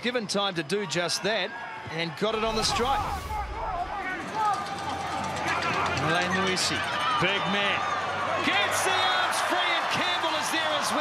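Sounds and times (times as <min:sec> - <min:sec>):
stadium background noise: 0:00.0 - 0:11.0
low rumble: 0:02.4 - 0:04.6.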